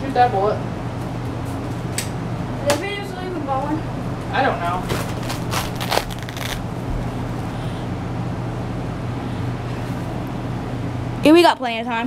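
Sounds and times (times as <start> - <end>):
low hum of room noise: 0.0 - 12.0.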